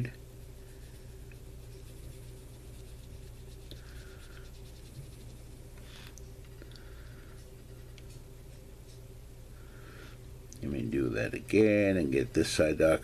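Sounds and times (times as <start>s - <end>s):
steady low hum: 0.0s - 13.0s
paintbrush strokes on leather: 0.6s - 5.5s.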